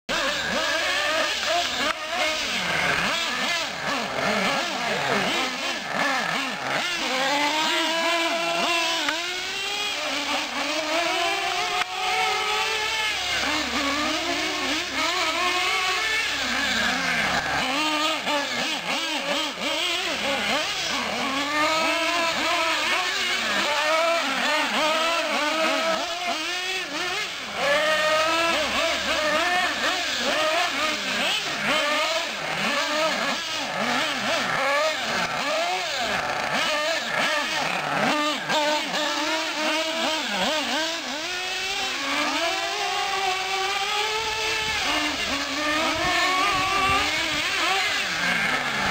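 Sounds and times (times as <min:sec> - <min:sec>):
small nitro engines revving: 0:00.1 - 0:48.9.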